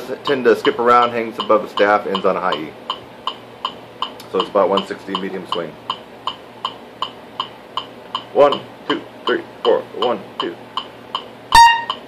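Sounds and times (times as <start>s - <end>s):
metronome clicking: 0.2s - 8.7s, 9.3s - 12.0s.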